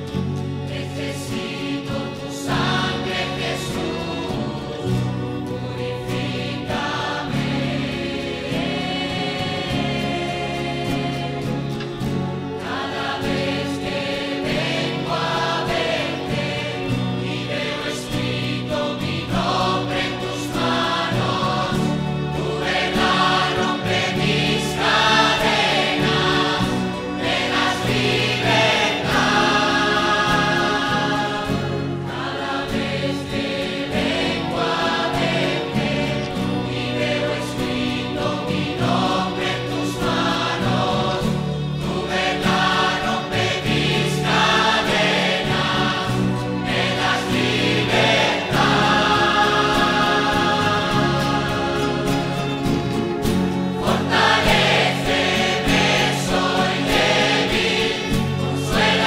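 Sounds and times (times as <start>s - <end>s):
choir singing worship music: 0.0s - 59.0s
instrumental accompaniment: 0.0s - 59.0s.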